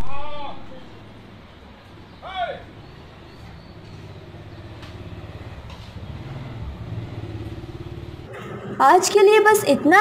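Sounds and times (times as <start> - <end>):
vehicle engine rumbling: 0.7 - 9.0
woman speaking: 8.8 - 10.0.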